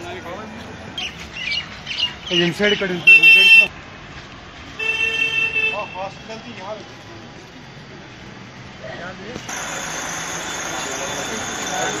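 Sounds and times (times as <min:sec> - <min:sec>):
vehicle horn honking: 0:03.0 - 0:03.7, 0:04.8 - 0:06.1.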